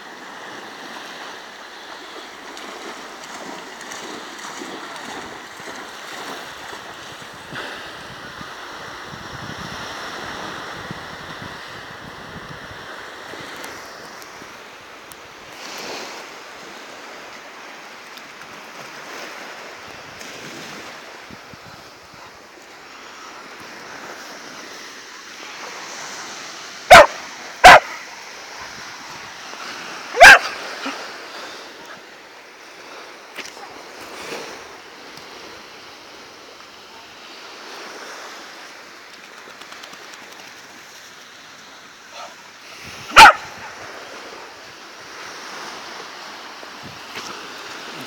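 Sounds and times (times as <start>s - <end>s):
surf: 0.0s - 48.0s
wind noise: 6.4s - 14.5s
dog barking: 26.9s - 28.0s, 30.1s - 31.0s, 42.1s - 42.4s, 43.1s - 44.6s.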